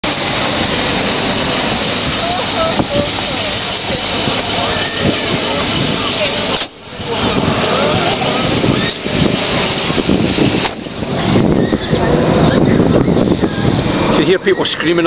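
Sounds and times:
wind on microphone: 0.0 - 15.0
distant voices and cries: 2.0 - 9.9, 10.9 - 15.0.

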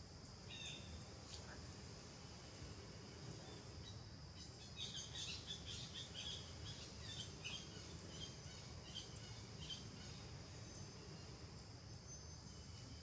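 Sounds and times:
high insect drone: 0.0 - 13.0.

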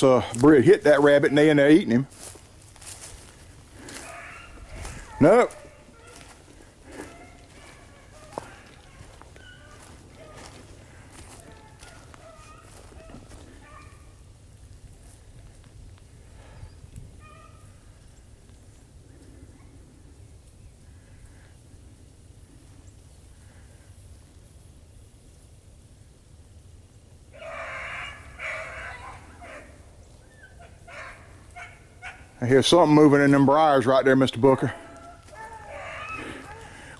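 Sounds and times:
dogs baying in the distance: 0.9 - 14.3, 17.2 - 17.8, 19.1 - 20.0, 27.4 - 36.9.

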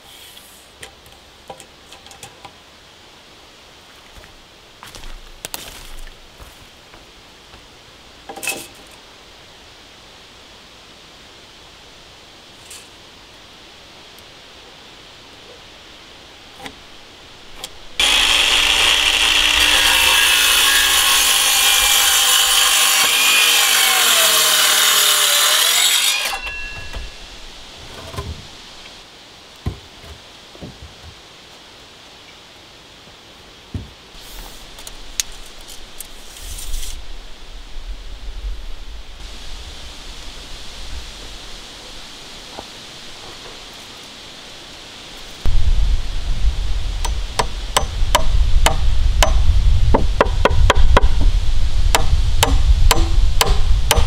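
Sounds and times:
outdoor hiss: 0.0 - 54.0
circular saw cutting wood: 18.0 - 27.5
wind buffeting microphone: 45.4 - 54.0.

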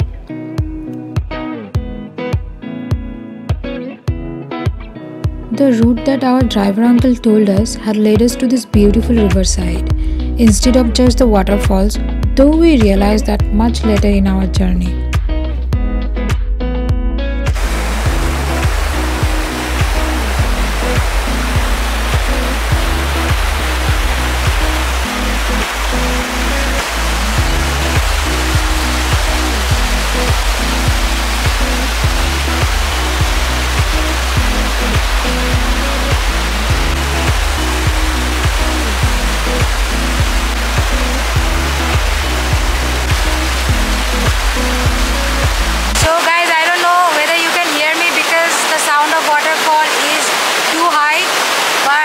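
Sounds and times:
background music: 0.0 - 50.2
water rushing through rapids: 17.5 - 52.0.

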